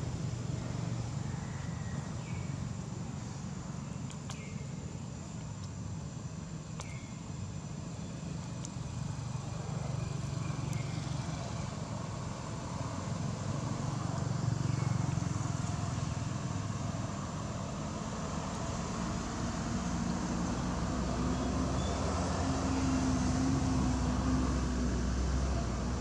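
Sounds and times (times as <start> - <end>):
motor vehicle rumble: 0.0 - 26.0.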